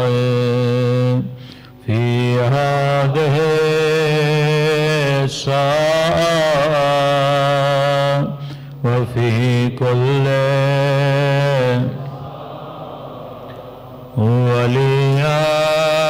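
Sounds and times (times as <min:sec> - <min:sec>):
man chanting: 0:00.0 - 0:13.4, 0:14.0 - 0:16.0.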